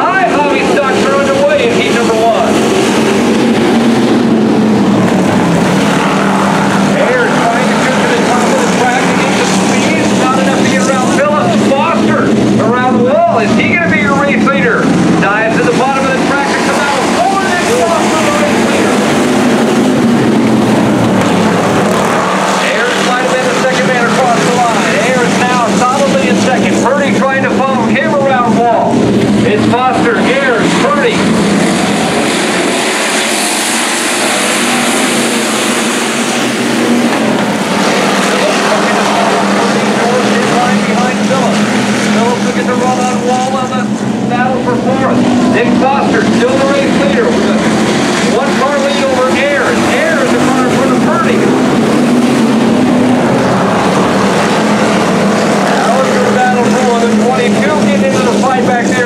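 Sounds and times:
race car engines revving: 0.0 - 59.0.

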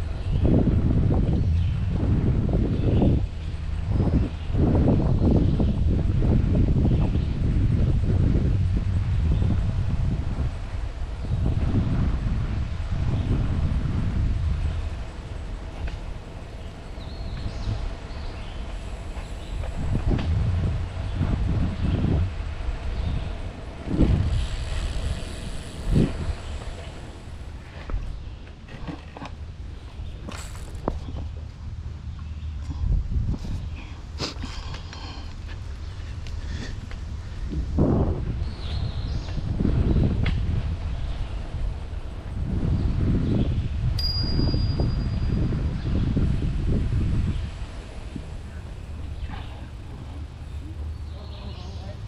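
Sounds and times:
low rumble on microphone: 0.0 - 52.0
bicycle bell ding: 44.0 - 45.4.

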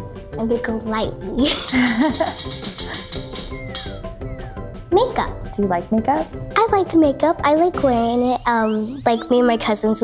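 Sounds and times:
background music: 0.0 - 10.0
prize wheel clicking: 1.6 - 4.0.

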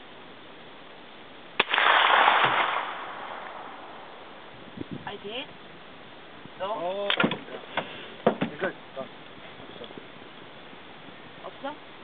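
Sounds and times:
pistol shot: 1.6 - 3.9.

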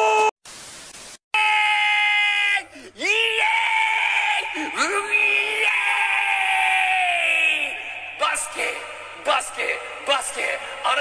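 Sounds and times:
man's high-pitched excited shriek: 0.0 - 0.4, 1.4 - 8.7.

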